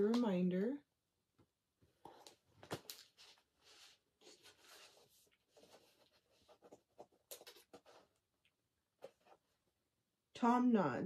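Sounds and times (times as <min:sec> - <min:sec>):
book pages turning: 0:02.0 - 0:08.2.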